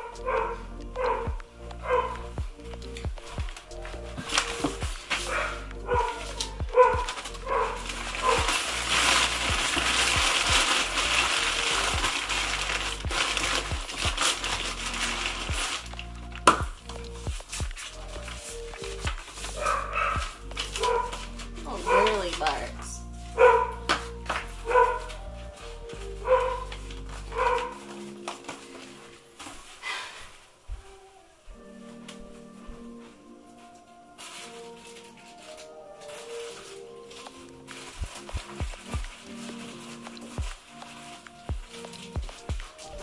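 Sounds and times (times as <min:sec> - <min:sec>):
background music with a beat: 0:00.0 - 0:29.2, 0:31.5 - 0:43.0
packing paper crinkling: 0:00.0 - 0:43.0.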